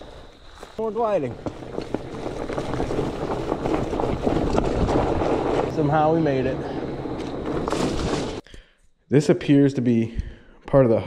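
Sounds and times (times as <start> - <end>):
bike tyres rolling over leaves: 0.0 - 8.4
wind on microphone: 1.3 - 8.4.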